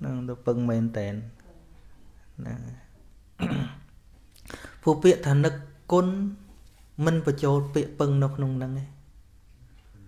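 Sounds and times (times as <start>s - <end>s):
man speaking: 0.0s - 1.4s, 2.4s - 3.8s, 4.5s - 9.1s
man clearing his throat: 3.4s - 3.9s.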